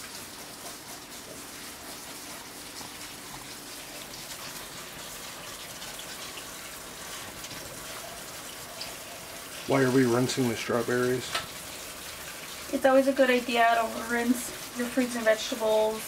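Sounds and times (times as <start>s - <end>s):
tap water running in sink: 0.0s - 16.0s
water splashing over fruit: 0.0s - 16.0s.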